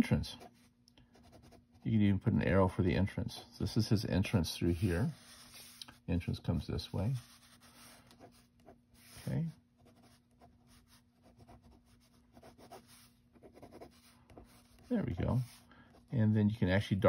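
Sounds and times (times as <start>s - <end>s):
pen scratching on paper: 4.6s - 5.8s, 7.2s - 16.1s.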